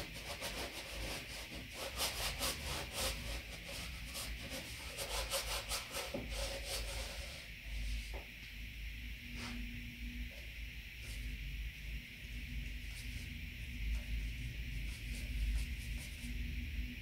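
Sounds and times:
paintbrush scrubbing on canvas: 0.0s - 8.0s, 12.6s - 16.6s.

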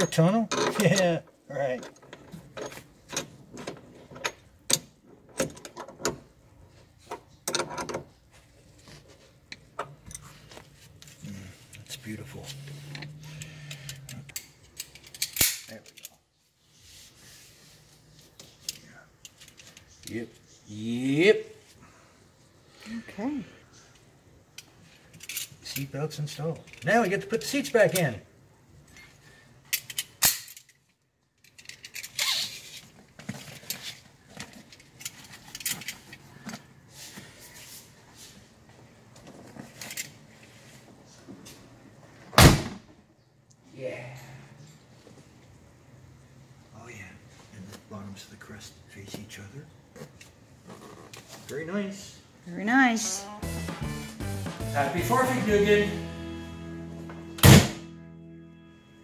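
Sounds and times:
background music chord: 53.2s - 59.0s
loud thump: 57.4s - 57.9s.

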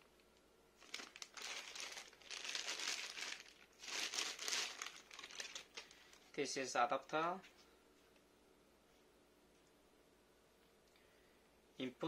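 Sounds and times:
plastic bag crinkling: 0.8s - 6.4s.

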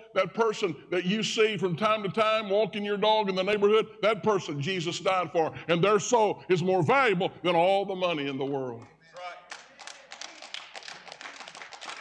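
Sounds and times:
people clapping: 8.8s - 12.0s.

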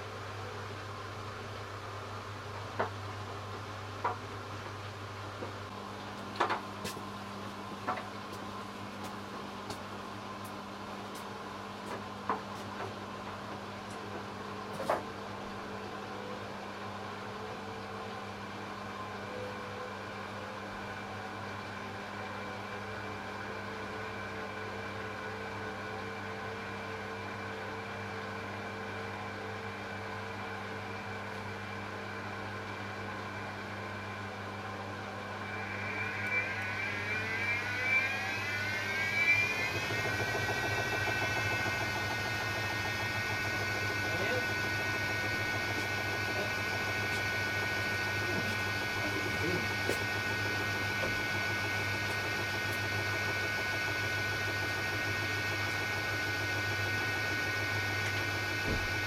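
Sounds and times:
washing machine spinning: 33.8s - 59.0s.

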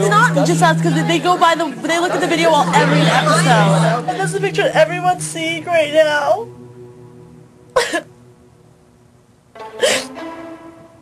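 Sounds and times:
quiet background music: 0.0s - 11.0s
woman sobbing: 7.8s - 8.1s, 9.8s - 10.2s.

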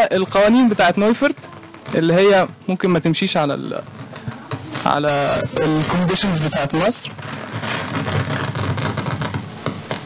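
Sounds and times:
steady hiss: 0.0s - 10.0s
crackling clicks: 0.2s - 10.0s.

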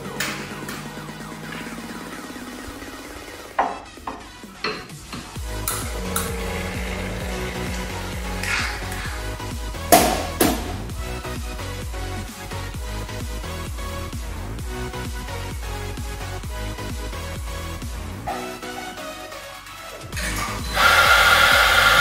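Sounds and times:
electronic background music: 0.0s - 22.0s.

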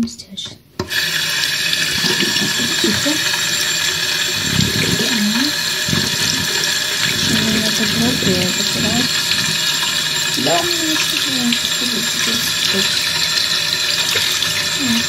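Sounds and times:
tap water splashing into plastic: 1.8s - 3.1s, 13.8s - 15.0s.

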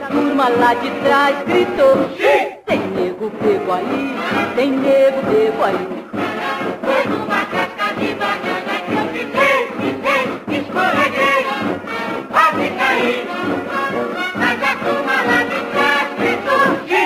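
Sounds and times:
woman singing lead: 0.0s - 6.0s
backing chorus singing: 0.0s - 17.0s
band playing: 0.0s - 17.0s.

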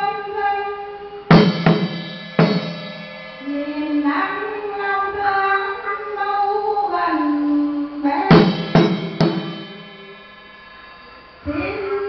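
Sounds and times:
sharp percussion strikes: 1.2s - 12.0s.

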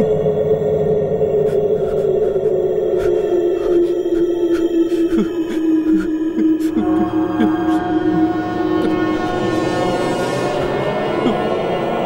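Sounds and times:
sinking droning tone: 0.0s - 12.0s.

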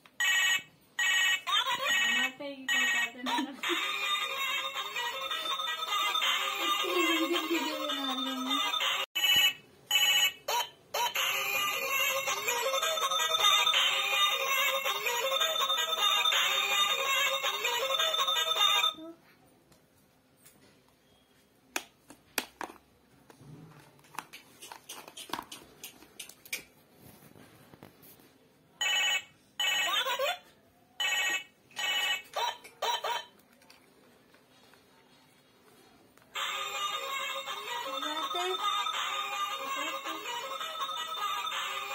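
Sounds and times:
toy telephone electronic tune: 0.2s - 19.0s, 28.8s - 30.3s, 31.0s - 33.2s, 36.4s - 41.9s.

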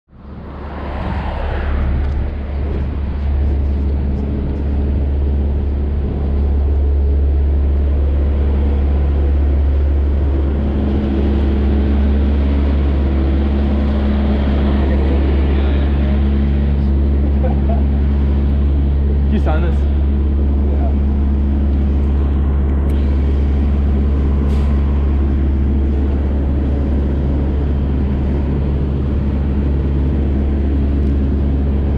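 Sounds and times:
low mechanical drone: 0.1s - 31.9s.

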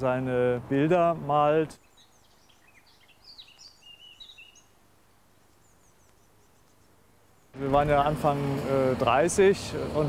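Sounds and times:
low hiss: 0.0s - 10.0s
faint bird chirps: 1.7s - 7.6s.

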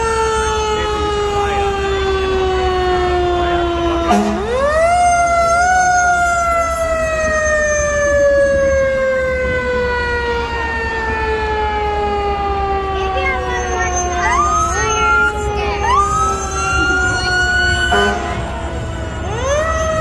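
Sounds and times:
fire engine siren winding: 0.0s - 20.0s.

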